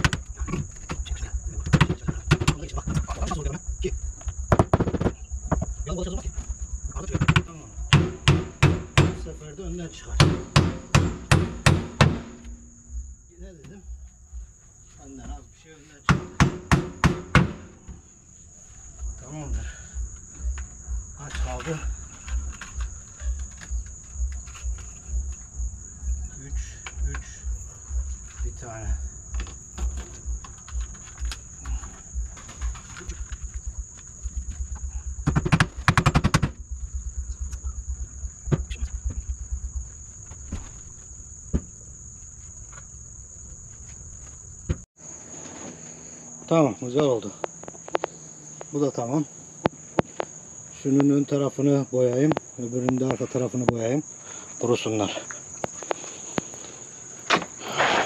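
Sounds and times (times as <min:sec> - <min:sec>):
high insect drone: 0:00.0 - 0:58.0.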